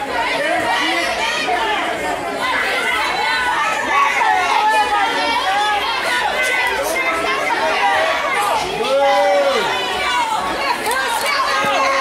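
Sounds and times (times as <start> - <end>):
crowd chattering and calling out: 0.0 - 12.0.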